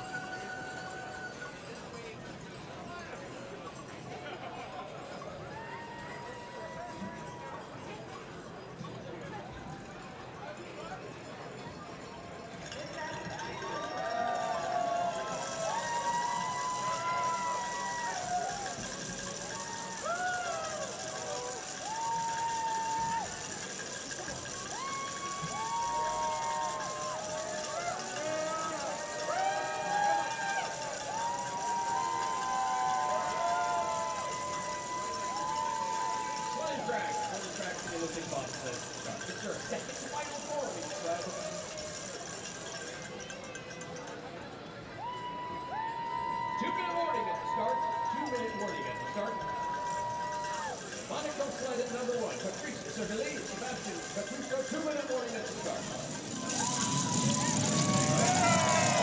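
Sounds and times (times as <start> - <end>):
people shouting: 13.7 - 23.6, 24.6 - 37.5, 56.0 - 59.0.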